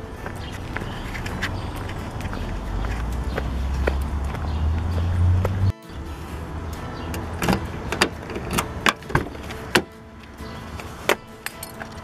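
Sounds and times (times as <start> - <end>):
car door lock and latch clicks: 7.1 - 9.9.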